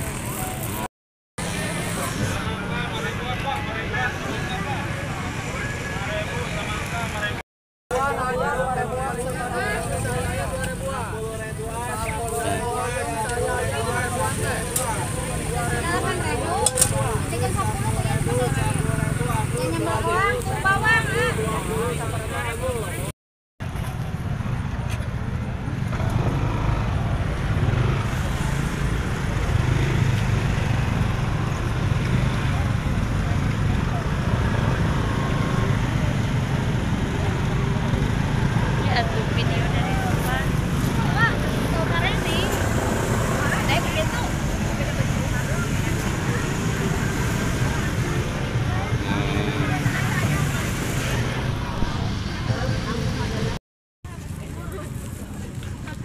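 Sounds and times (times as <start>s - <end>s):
motor scooters droning: 0.0s - 7.4s, 8.0s - 23.0s, 24.0s - 53.5s
murmur of shoppers' voices: 0.0s - 23.1s, 23.8s - 56.0s.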